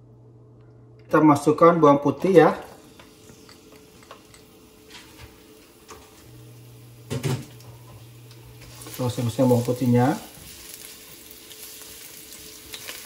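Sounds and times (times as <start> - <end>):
garlic sizzling in oil: 2.8 - 13.0.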